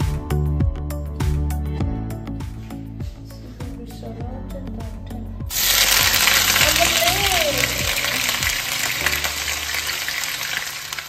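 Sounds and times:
onion sizzling in hot oil: 5.5 - 11.0.

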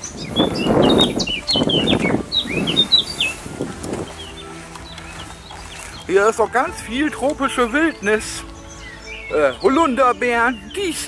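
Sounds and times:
wind on microphone: 0.0 - 6.1
low held music chord: 0.0 - 11.0
songbirds chirping: 0.0 - 11.0.

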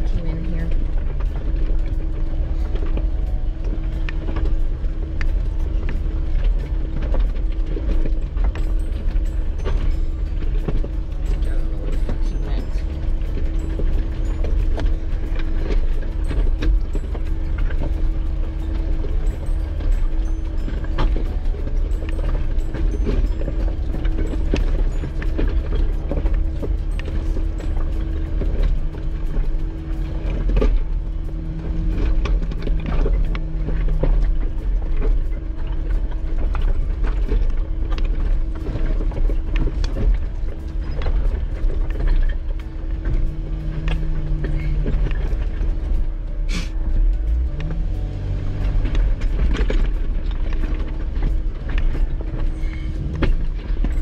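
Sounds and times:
low engine drone: 0.0 - 54.0.

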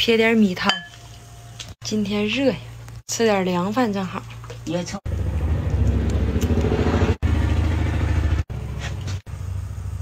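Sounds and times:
small engine droning: 5.1 - 10.0.

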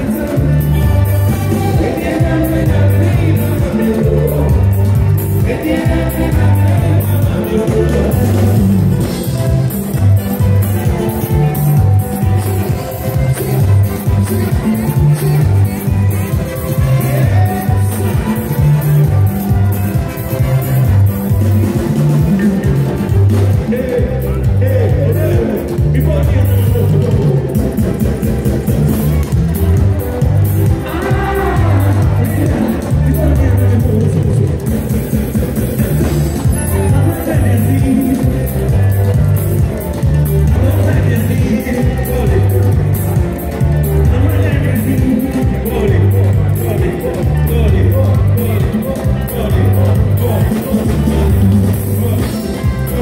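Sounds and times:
man singing: 0.0 - 27.8, 30.6 - 53.0
bass line: 0.0 - 53.0
drum kit beat: 0.0 - 53.0
keyboards: 0.0 - 53.0
live band playing: 0.0 - 53.0.

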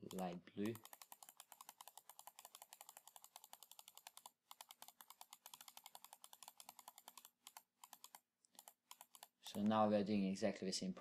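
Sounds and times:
fast computer clicking: 0.0 - 9.9.

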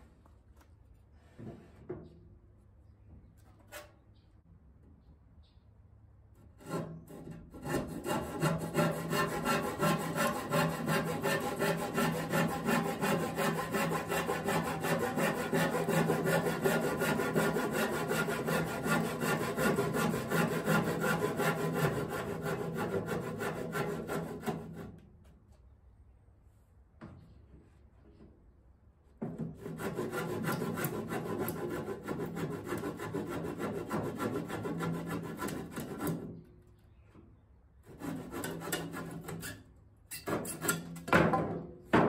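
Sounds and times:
handsaw cutting wood: 6.6 - 25.0, 29.6 - 36.3, 37.9 - 39.4.

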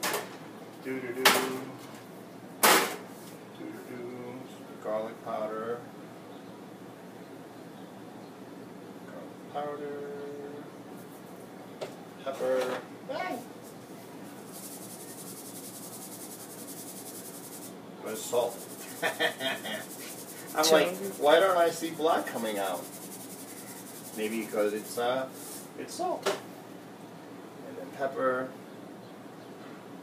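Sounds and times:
seasoning shaker rattling: 14.4 - 25.8.

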